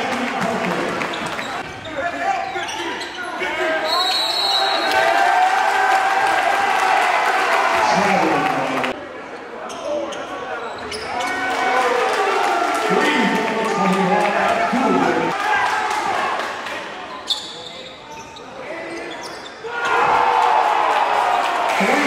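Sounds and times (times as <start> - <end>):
voices in a gym: 0.0 - 21.2.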